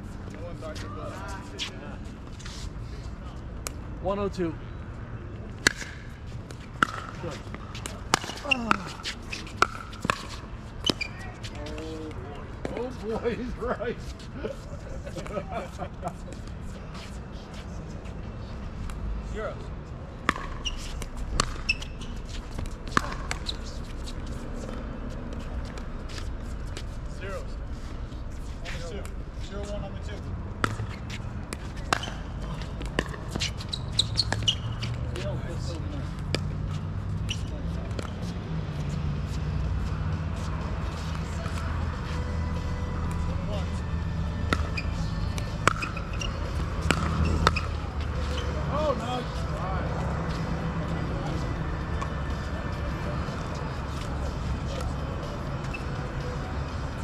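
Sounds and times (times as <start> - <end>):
paddles striking pickleball: 6.7 - 11.1, 20.3 - 21.9, 44.5 - 47.7
ball bouncing on hard court: 6.7 - 11.8, 20.2 - 24.0, 30.6 - 35.0, 44.4 - 48.4.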